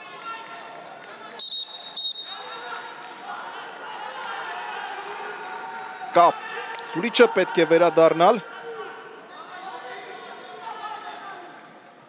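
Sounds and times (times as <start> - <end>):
murmur of voices in arena: 0.0 - 12.0
shrill whistle blasts: 1.4 - 2.6.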